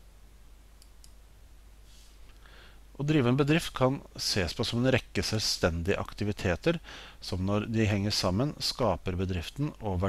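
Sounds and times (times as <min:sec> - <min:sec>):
faint room hiss: 0:00.0 - 0:10.0
low steady hum: 0:00.0 - 0:10.0
computer mouse clicks: 0:00.8 - 0:01.2.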